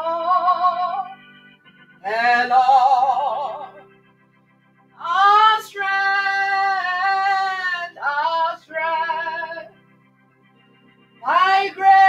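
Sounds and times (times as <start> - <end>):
electronic keyboard chord: 0.0 - 12.0
woman singing: 2.0 - 3.8, 5.0 - 9.7, 11.2 - 12.0.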